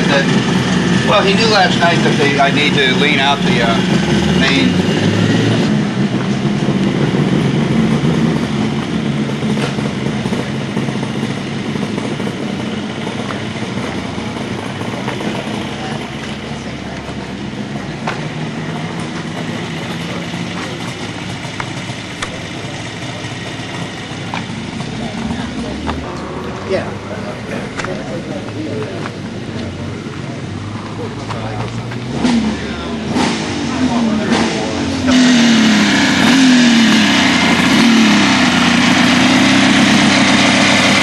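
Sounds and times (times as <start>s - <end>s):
engine idling: 0.0s - 41.0s.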